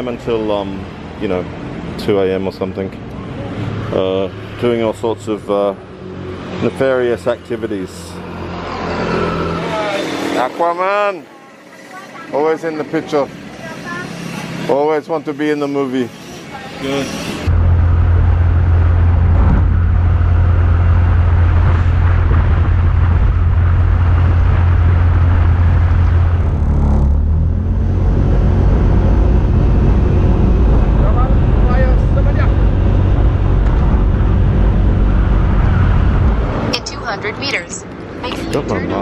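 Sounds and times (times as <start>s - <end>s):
road noise: 0.0s - 39.0s
wind buffeting microphone: 17.5s - 36.8s.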